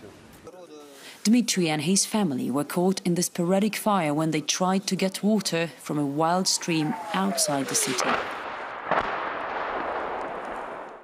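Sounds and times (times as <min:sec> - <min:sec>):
distant artillery blast: 0:06.6 - 0:11.0.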